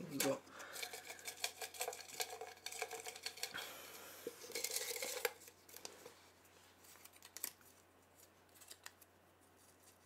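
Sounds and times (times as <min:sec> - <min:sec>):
faint clicks and rustles: 0:04.2 - 0:10.0.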